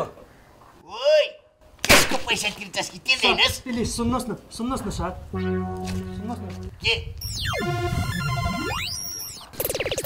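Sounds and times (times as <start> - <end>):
synth pitch sweep: 7.2 - 10.0.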